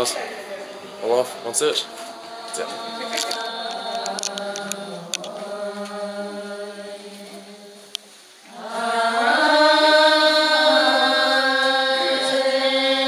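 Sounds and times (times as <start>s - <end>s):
droning chanted voices: 0.0s - 13.0s.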